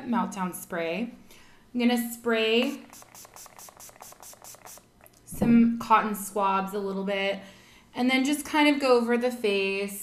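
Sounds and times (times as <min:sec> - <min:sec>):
pump spray bottle hissing: 0:02.6 - 0:05.1.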